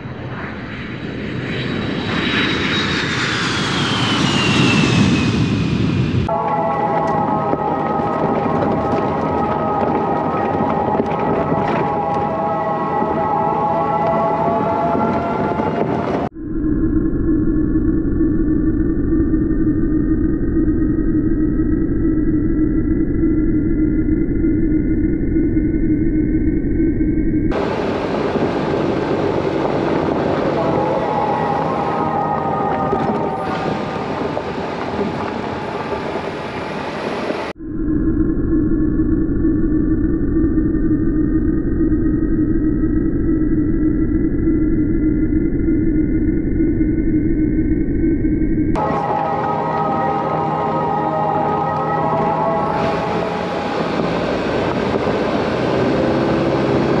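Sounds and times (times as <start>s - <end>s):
faint whine: 14.9s - 55.1s
off-road vehicle engine drone: 24.5s - 37.6s, 47.6s - 57.0s.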